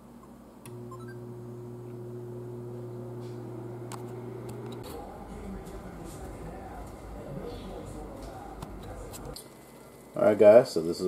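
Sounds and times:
oven fan humming: 0:00.6 - 0:11.0.

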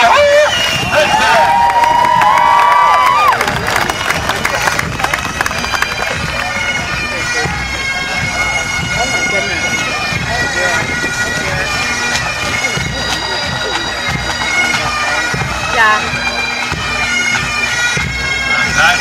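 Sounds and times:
bagpipes playing: 0:00.0 - 0:19.0
marching drumbeats: 0:00.6 - 0:19.0.

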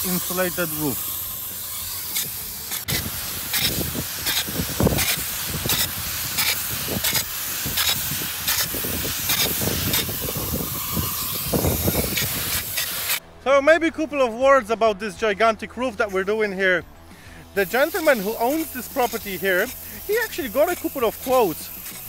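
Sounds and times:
spray gun hissing: 0:00.0 - 0:13.2, 0:17.5 - 0:22.0.

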